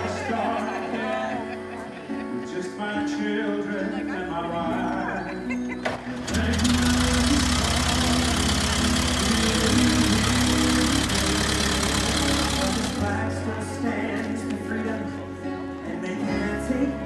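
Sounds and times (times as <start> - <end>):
song with singing: 0.0 - 17.0
truck engine pulsing with hiss: 6.2 - 13.0.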